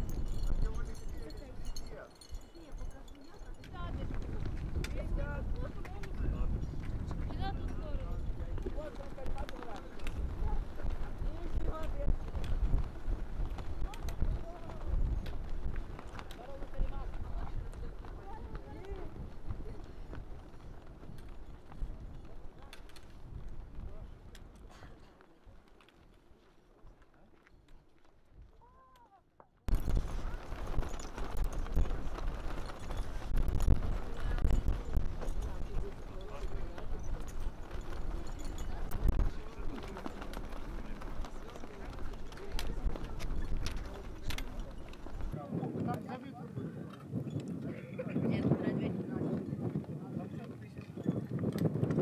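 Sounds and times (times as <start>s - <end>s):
wind buffeting microphone: 0.0s - 25.0s, 29.7s - 52.0s
flags flapping and knocking: 0.0s - 28.7s, 29.4s - 46.2s, 46.9s - 52.0s
people talking: 0.6s - 6.6s, 7.2s - 12.2s, 13.8s - 15.2s, 16.3s - 20.0s, 33.8s - 51.4s
faint indistinct voices: 0.6s - 27.7s, 30.0s - 51.8s.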